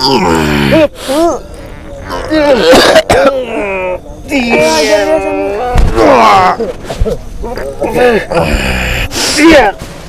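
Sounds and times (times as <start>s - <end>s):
person groaning: 8.3s - 9.1s
rasping throaty sound: 8.3s - 9.4s.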